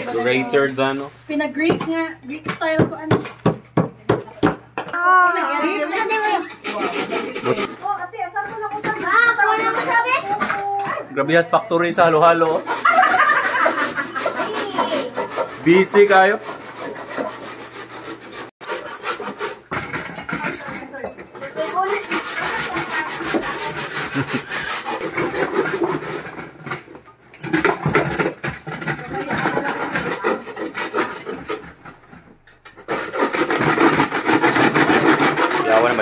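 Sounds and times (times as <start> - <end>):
ice shaver scraping ice: 0.0 - 1.5, 5.6 - 10.7, 12.0 - 36.0.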